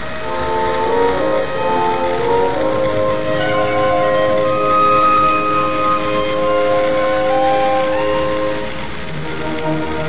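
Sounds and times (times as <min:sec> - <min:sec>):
music with long held notes: 0:00.0 - 0:10.0.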